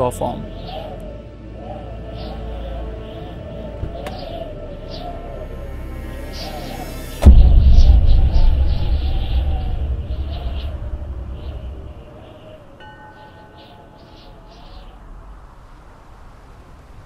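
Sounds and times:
thunderclap with rolling rumble: 7.2 - 12.2
light chiming tones: 12.8 - 14.9.

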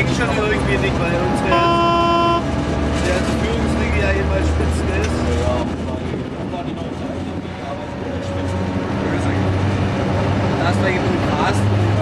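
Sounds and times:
diesel engine running: 0.0 - 12.0
locomotive horn blast: 0.9 - 2.7.

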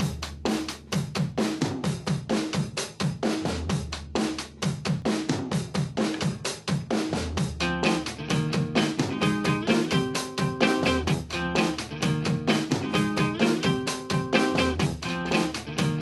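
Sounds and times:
fast drum beat: 0.0 - 16.0
pitched instrument: 7.6 - 16.0.

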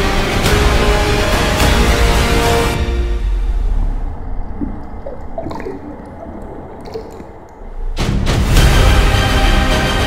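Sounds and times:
underwater bubbling rumble: 3.5 - 8.1
small bubble blips: 4.5 - 7.7.

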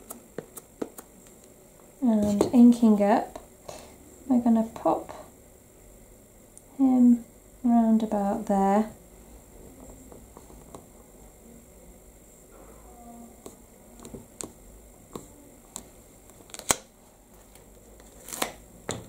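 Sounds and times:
quiet handling noise: 9.7 - 11.2.

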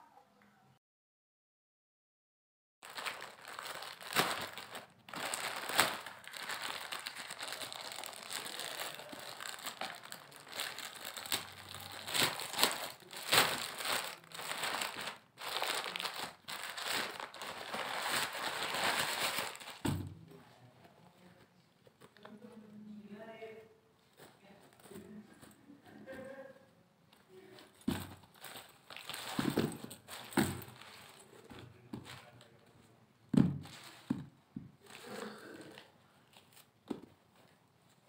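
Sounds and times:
plastic packaging crinkling: 2.8 - 19.9, 27.8 - 31.4.

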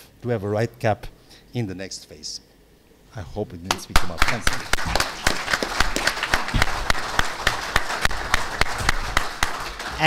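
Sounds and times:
audience applauding: 3.8 - 10.0.

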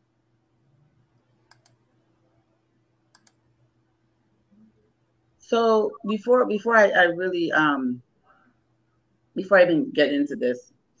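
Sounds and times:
faint computer mouse clicks: 1.4 - 1.8, 3.1 - 3.4.

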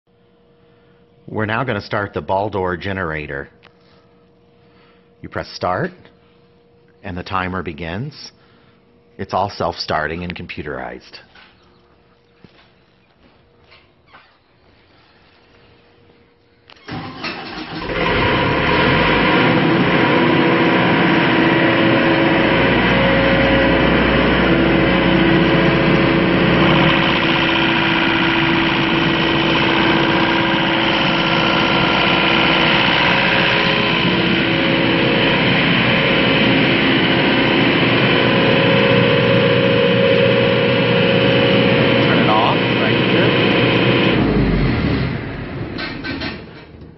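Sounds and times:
diesel generator engine running: 15.0 - 46.9.

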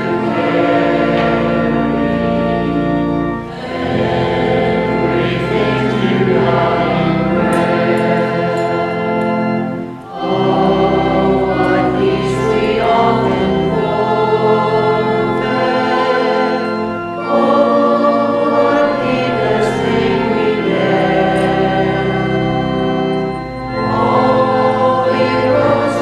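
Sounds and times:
choir singing a hymn: 0.0 - 26.0
organ: 0.0 - 26.0.

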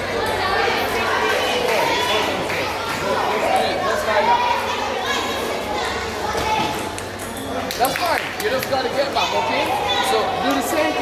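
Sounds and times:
chatter of children and adults: 0.0 - 11.0.

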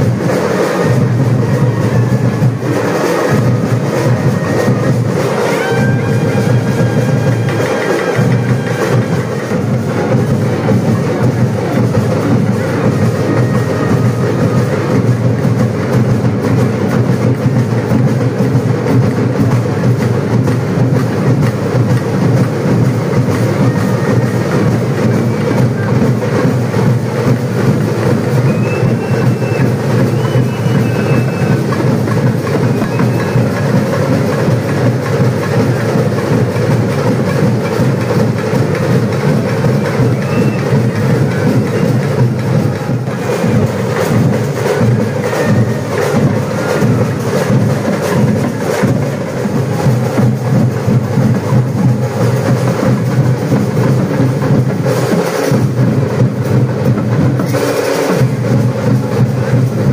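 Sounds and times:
fast continuous drumming: 0.0 - 59.9.

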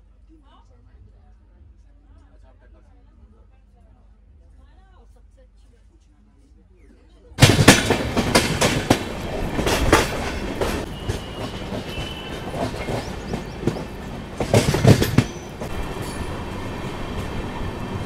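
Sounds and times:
train wheels clacking over rail joints: 7.4 - 18.0
faint high wheel squeal: 10.8 - 13.8.

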